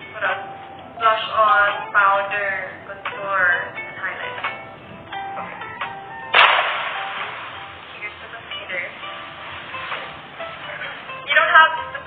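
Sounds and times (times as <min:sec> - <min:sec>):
sharp crack: 0:05.7 - 0:10.6.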